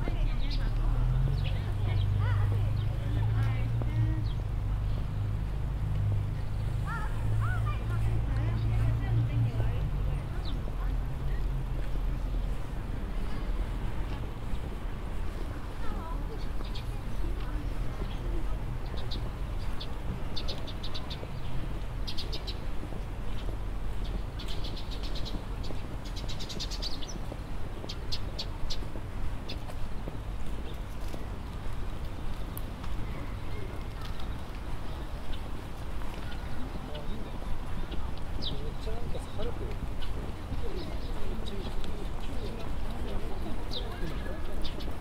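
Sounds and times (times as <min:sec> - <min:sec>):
murmur of distant voices: 0:00.0 - 0:45.0
songbirds chirping: 0:00.0 - 0:45.0.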